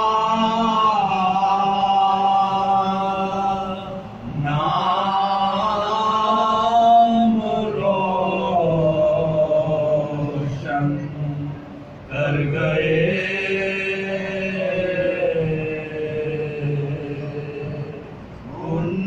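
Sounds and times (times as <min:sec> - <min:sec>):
men singing in unison: 0:00.0 - 0:11.0, 0:12.1 - 0:19.0.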